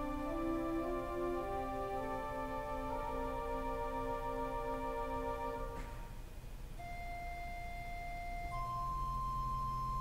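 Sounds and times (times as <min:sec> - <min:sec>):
organ played softly: 0:00.0 - 0:06.2, 0:06.8 - 0:10.0.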